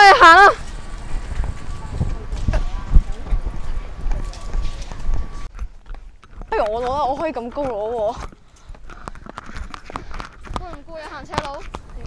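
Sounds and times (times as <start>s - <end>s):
footsteps: 0.0s - 12.0s
handheld camera jostling: 0.6s - 12.0s.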